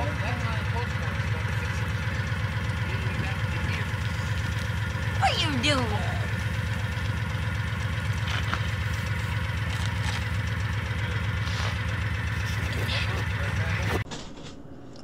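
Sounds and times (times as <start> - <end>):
vehicle engine idling: 0.0 - 14.0.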